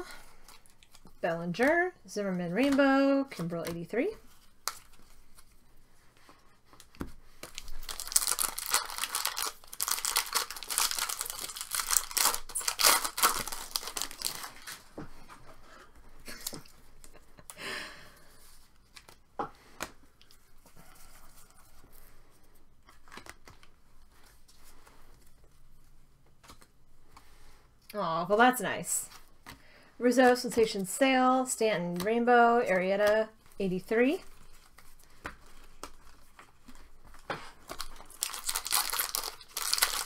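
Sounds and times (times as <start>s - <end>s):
cards being shuffled: 2.4s - 15.4s, 22.8s - 25.6s, 26.2s - 27.3s, 31.6s - 40.0s
foil wrapper tearing and crinkling: 7.4s - 14.8s, 37.6s - 40.0s.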